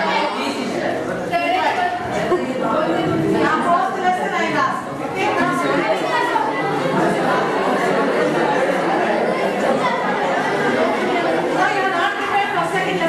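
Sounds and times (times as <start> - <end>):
classroom chatter of voices: 0.0 - 13.0.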